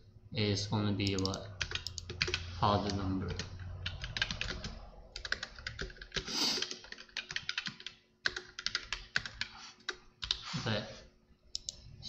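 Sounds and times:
typing on computer keyboard: 1.0s - 10.4s.

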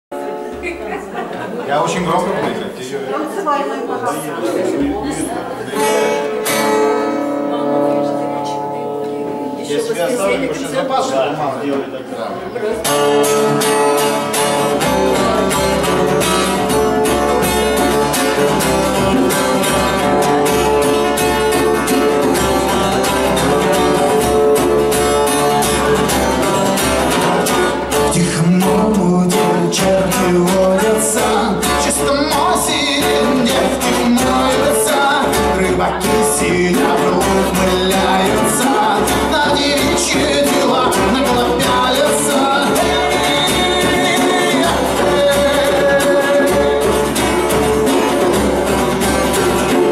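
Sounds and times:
acoustic guitar strumming: 0.1s - 3.3s, 4.4s - 49.9s
man singing into a microphone: 27.9s - 48.2s.

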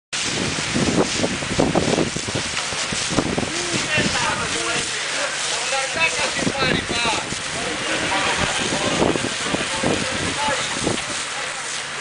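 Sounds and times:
fire hose spraying water: 0.1s - 12.0s
voices talking: 3.5s - 12.0s.

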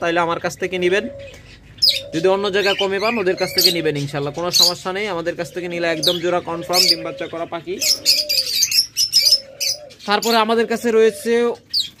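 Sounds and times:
doves cooing: 0.0s - 12.0s
small birds chirping: 0.0s - 12.0s.

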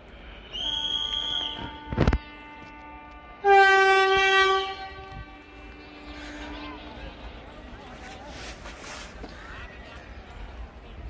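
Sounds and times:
train horn: 0.6s - 7.0s.

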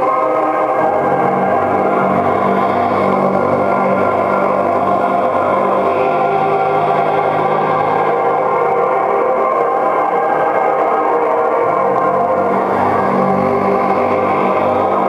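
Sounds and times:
ambient electronic drone music: 0.0s - 15.0s.

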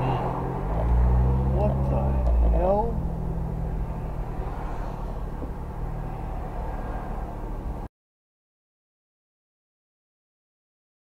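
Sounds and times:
road noise: 0.0s - 7.9s
vehicle engine from inside cab: 0.0s - 7.9s.

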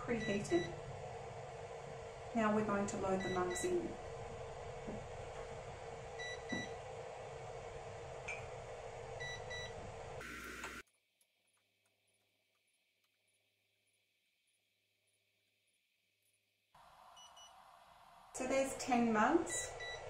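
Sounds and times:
heat press humming: 0.0s - 10.8s.

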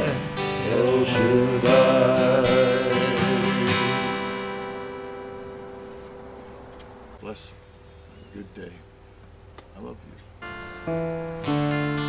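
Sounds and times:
acoustic guitar chord: 0.0s - 6.4s, 10.4s - 12.0s.

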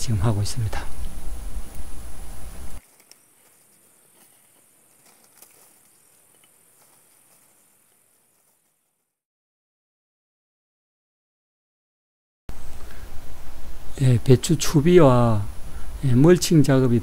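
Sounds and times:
faint clicks: 2.8s - 8.8s.

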